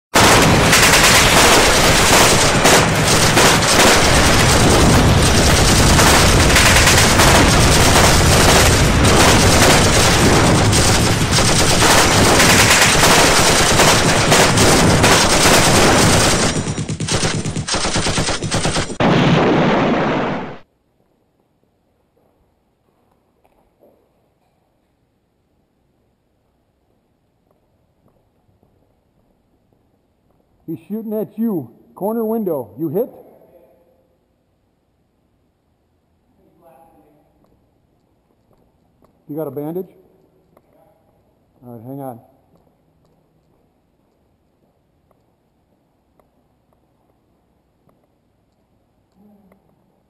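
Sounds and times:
automatic gunfire: 0.2s - 20.6s.

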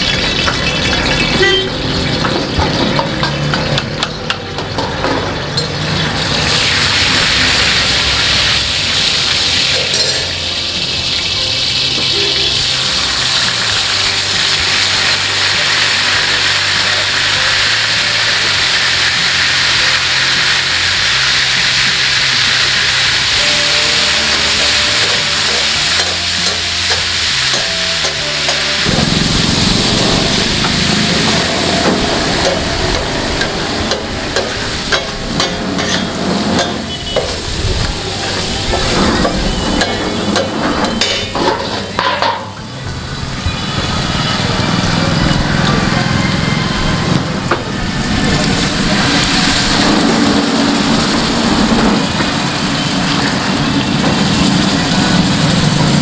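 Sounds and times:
hot oil sizzling: 0.0s - 56.0s.

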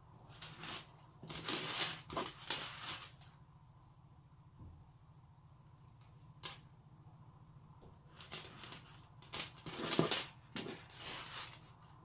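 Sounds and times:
low steady hum: 0.0s - 12.0s
plastic beads clicking and rattling: 0.3s - 3.4s, 8.1s - 11.9s.

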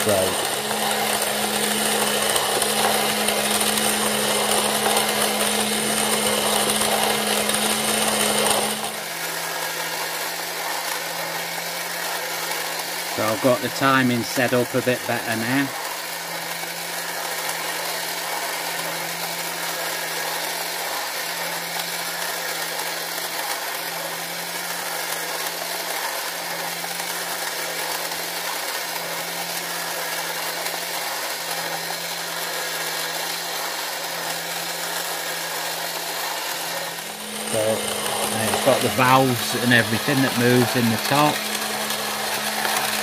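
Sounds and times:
model engine mechanical whir: 0.0s - 43.0s.

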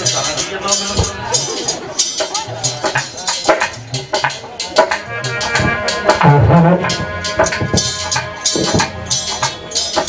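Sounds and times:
dholak drum rhythm: 0.0s - 10.0s
heavy low drum stroke: 0.0s - 10.0s
jingling percussion strikes: 0.0s - 10.0s.

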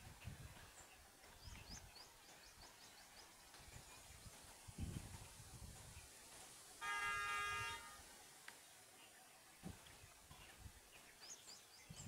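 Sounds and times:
vehicle horn honk: 6.8s - 8.0s.

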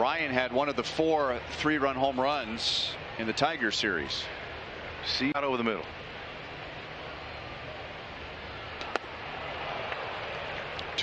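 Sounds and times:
crowd hum: 0.0s - 11.0s.

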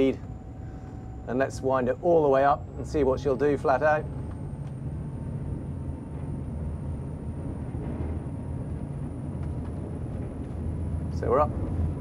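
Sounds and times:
faint high whine: 0.0s - 4.6s
diesel engines droning: 0.0s - 12.0s.

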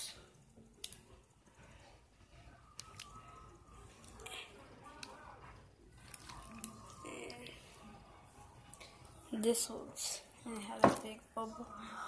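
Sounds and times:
wet squishing of slime: 5.9s - 7.8s.

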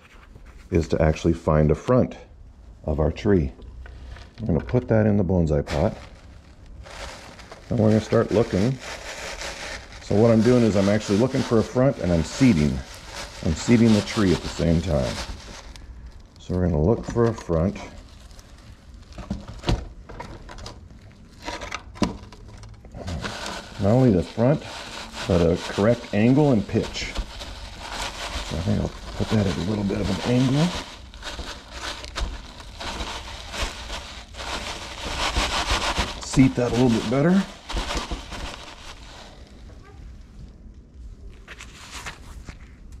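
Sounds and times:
soil crunching and scraping: 5.6s - 18.6s, 22.3s - 39.6s.

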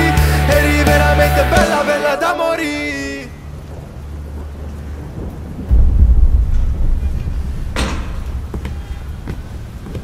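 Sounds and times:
deep thunder-like rumble: 3.7s - 10.0s
sharp crack: 5.7s - 10.0s.

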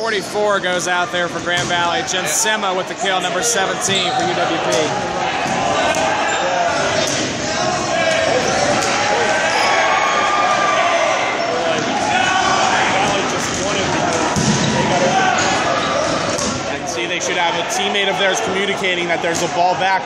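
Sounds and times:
players shouting: 0.0s - 20.0s
balls bouncing on hard floor: 13.0s - 14.8s.

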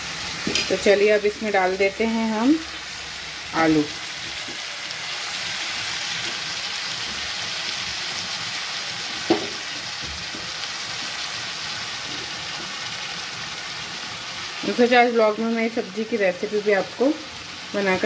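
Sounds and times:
vegetables sizzling in oil: 0.0s - 18.0s.

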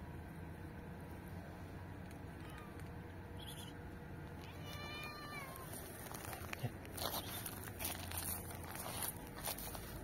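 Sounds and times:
cat meowing: 4.4s - 5.8s.

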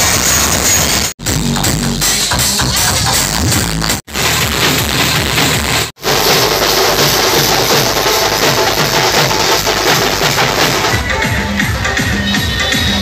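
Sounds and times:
barrel drums beaten with sticks: 1.3s - 13.0s.

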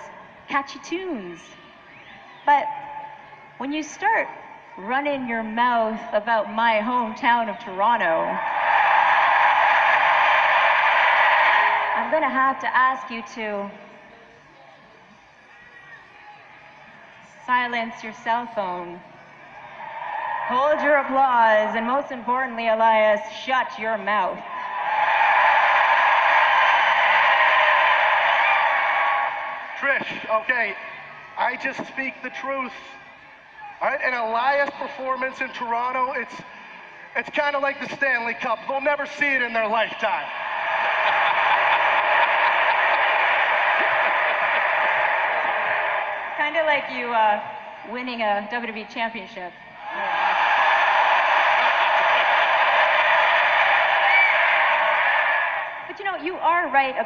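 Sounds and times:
arena crowd cheering: 0.0s - 57.0s.

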